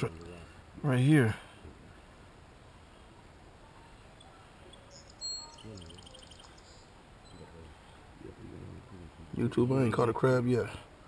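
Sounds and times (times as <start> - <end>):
high bird chirps: 4.2 - 7.6
high bird whistle: 4.7 - 7.4.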